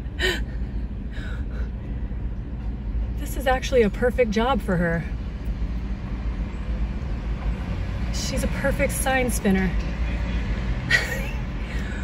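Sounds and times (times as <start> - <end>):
cars driving past: 2.2 - 12.0.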